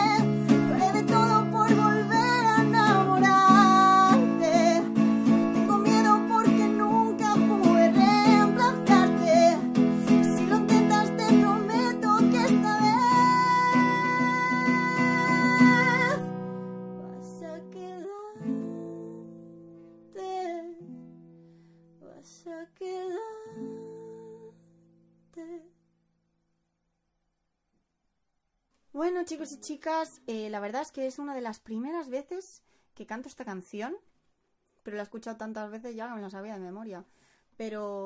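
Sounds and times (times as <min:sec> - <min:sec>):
woman singing pop ballad: 0:00.0 - 0:16.4, 0:17.0 - 0:19.4, 0:20.2 - 0:20.8, 0:22.0 - 0:24.6
acoustic guitar strumming: 0:00.0 - 0:19.9.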